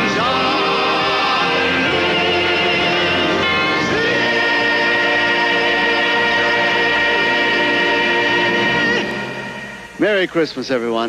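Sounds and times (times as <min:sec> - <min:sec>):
male singer and choir sustained note: 0:00.0 - 0:10.2.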